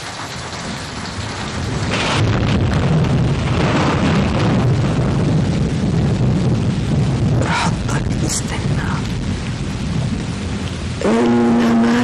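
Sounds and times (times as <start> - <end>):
rain: 0.0 - 12.0
thunder rumbling: 0.0 - 12.0.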